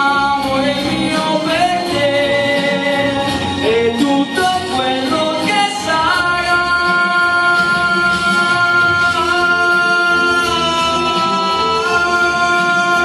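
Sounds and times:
backing music: 0:00.0 - 0:13.0
man singing into a microphone: 0:00.0 - 0:13.0.

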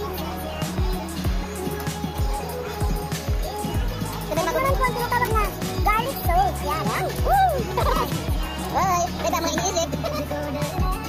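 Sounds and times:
gliding vocal-like melody: 0:00.0 - 0:11.0
steady beat: 0:00.0 - 0:11.0.

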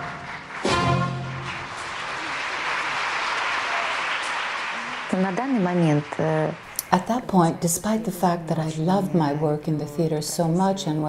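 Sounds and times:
orchestra closing chord: 0:00.0 - 0:01.8
audience applause: 0:00.0 - 0:07.3.

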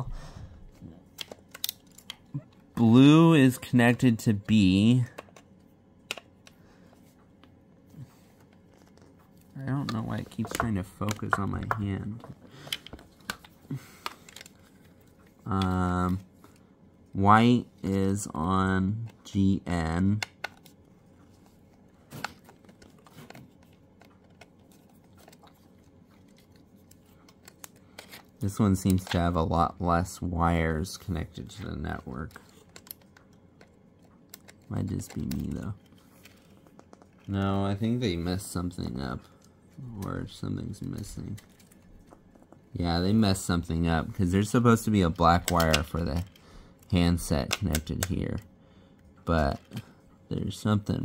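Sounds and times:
wires being handled: 0:00.6 - 0:51.0.

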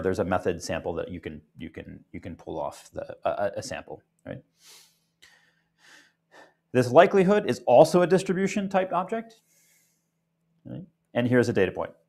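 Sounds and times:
man speaking: 0:00.0 - 0:04.5, 0:06.8 - 0:09.4, 0:10.7 - 0:12.0
breath in through the mouth: 0:04.6 - 0:06.6, 0:09.4 - 0:10.0.

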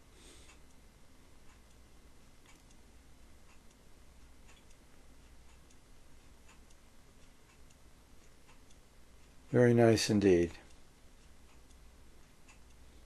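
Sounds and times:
faint background hiss: 0:00.0 - 0:13.0
soft ticks: 0:00.0 - 0:13.0.

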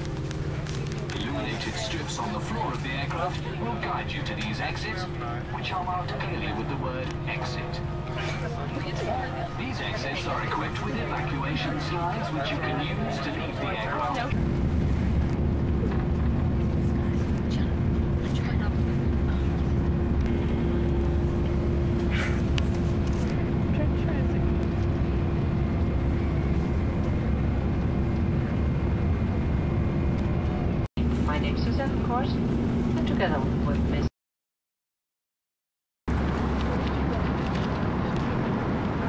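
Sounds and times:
airliner cabin drone: 0:00.0 - 0:34.1, 0:36.1 - 0:39.0.

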